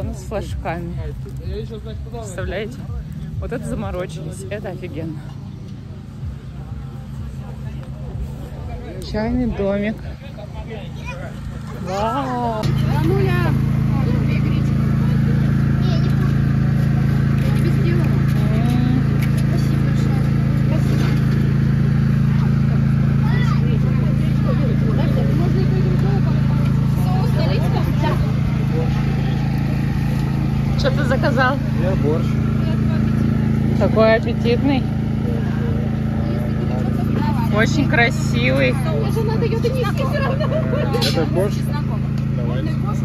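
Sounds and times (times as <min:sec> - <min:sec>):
faint voices: 0:00.0 - 0:43.0
motor droning: 0:00.0 - 0:43.0.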